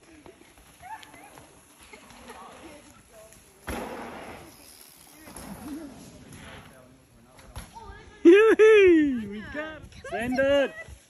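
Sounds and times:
bike tyres rolling over dirt: 0:00.0 - 0:08.3.

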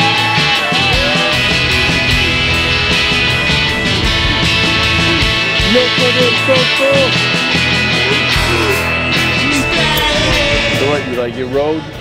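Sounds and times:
rock music: 0:00.0 - 0:12.0.

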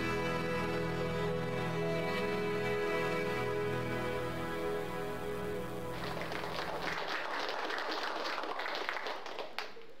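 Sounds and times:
congregation applauding: 0:05.8 - 0:10.0.

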